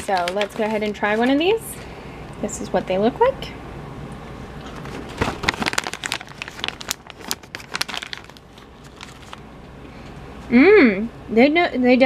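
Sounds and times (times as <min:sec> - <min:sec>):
plastic snack pouch crinkling: 0:00.0 - 0:01.2, 0:04.7 - 0:09.5.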